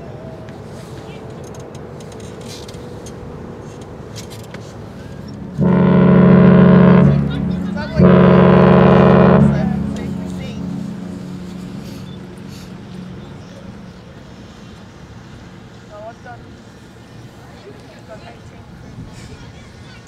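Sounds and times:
deep ship's whistle blasts: 0:05.2 - 0:13.9.

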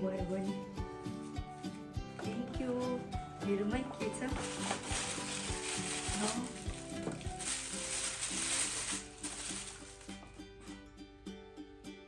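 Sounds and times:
light background music: 0:00.0 - 0:12.0
paper rustling and crinkling: 0:04.0 - 0:10.4.

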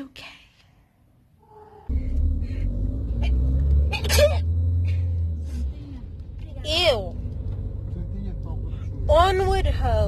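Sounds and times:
car engine and road rumble: 0:01.5 - 0:10.0.

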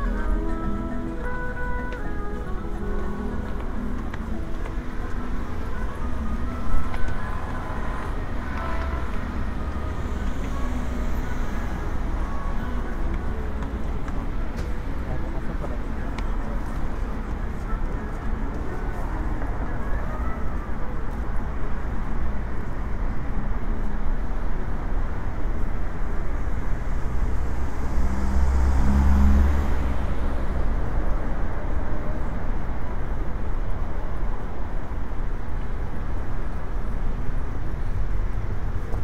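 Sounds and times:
city road traffic: 0:00.0 - 0:39.0
vehicle passing close by: 0:27.0 - 0:30.9.

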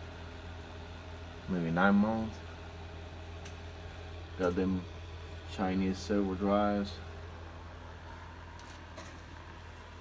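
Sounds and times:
machine low hum: 0:00.0 - 0:10.0.

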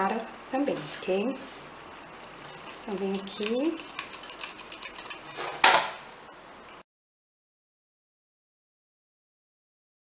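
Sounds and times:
loud handling scrape: 0:05.2 - 0:06.0.

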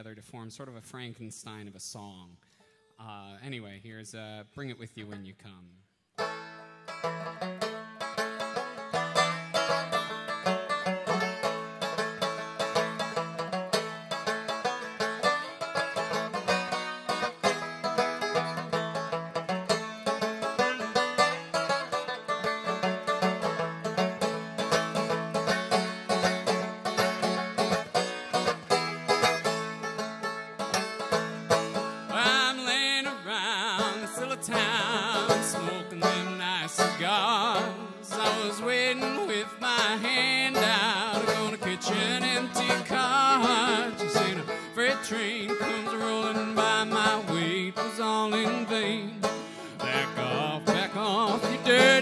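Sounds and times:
banjo picking: 0:04.6 - 0:52.0.

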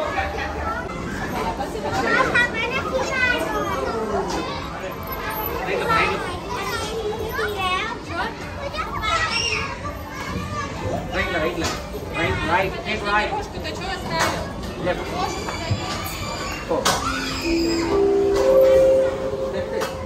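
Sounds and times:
children shouting and squealing: 0:08.6 - 0:11.0, 0:15.0 - 0:19.6.

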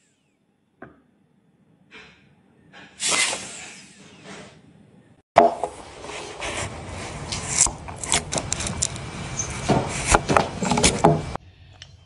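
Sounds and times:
air pump hissing: 0:03.0 - 0:04.3.

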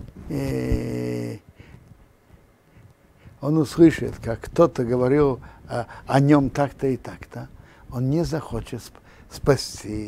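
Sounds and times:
man saying ehh: 0:00.3 - 0:01.4.

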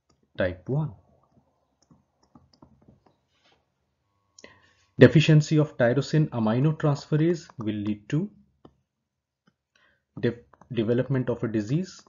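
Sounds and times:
stylus tapping on tablet screen: 0:00.0 - 0:03.4, 0:07.4 - 0:10.7.

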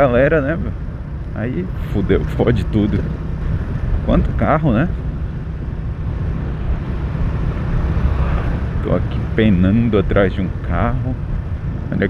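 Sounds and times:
wind and road noise: 0:00.0 - 0:12.0.

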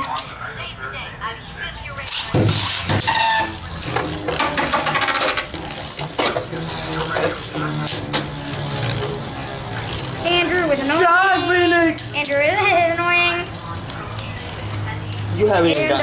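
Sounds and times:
spinning tops clattering: 0:02.6 - 0:12.5.

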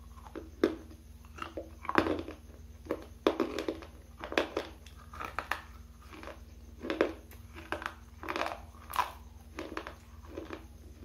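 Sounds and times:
crunchy chewing of hard bar: 0:00.0 - 0:11.0
steady low hum: 0:00.0 - 0:11.0.

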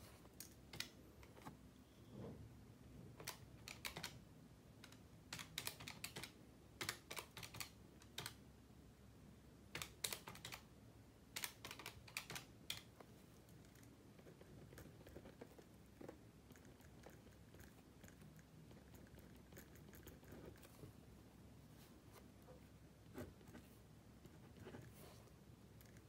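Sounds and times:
calculator keys clicking: 0:04.8 - 0:08.4, 0:11.4 - 0:12.9.

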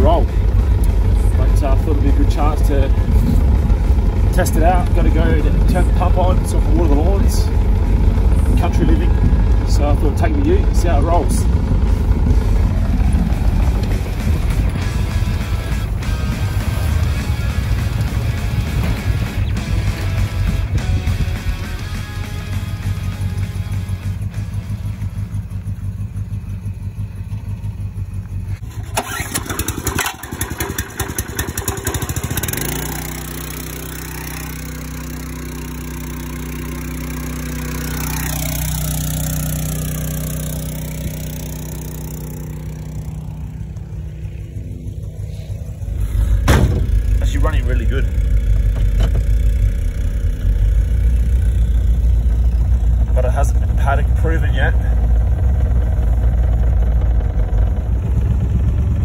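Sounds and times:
car engine rumbling: 0:00.0 - 0:59.0
small petrol pump engine: 0:00.0 - 0:59.0.

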